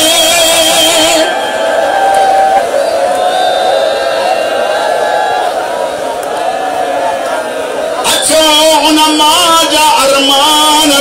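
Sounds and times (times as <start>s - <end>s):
man chanting: 8.0s - 11.0s.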